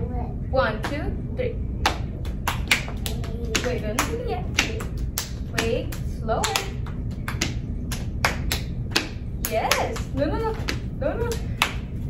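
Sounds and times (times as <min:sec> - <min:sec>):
adult and children clapping: 0:01.8 - 0:12.0.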